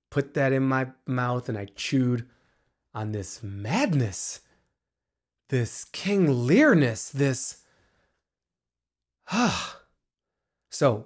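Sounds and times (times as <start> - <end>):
man sighing: 9.2 - 10.0.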